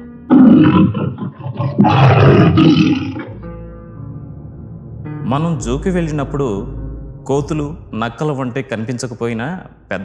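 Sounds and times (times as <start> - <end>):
tiger roaring: 0.3 - 3.4.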